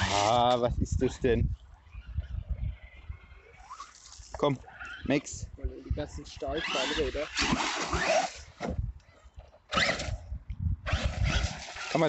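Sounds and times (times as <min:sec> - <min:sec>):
wind rumble on microphone: 0:00.0 - 0:03.6, 0:05.3 - 0:07.2, 0:08.4 - 0:11.7.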